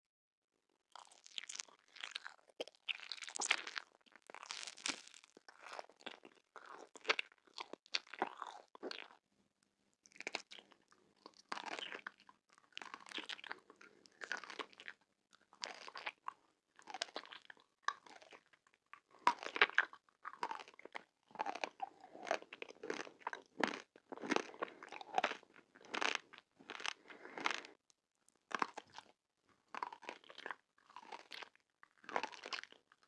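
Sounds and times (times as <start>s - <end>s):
crunching hard candy: 0.9s - 9.2s, 10.1s - 27.8s, 28.4s - 33.0s.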